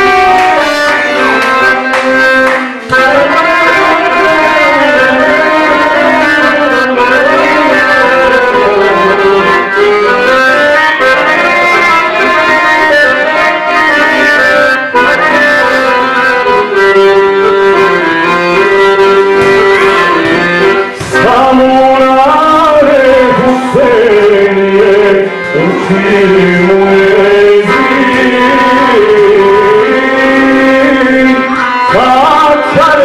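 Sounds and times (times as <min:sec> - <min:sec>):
live folk music: 0:00.0 - 0:33.0.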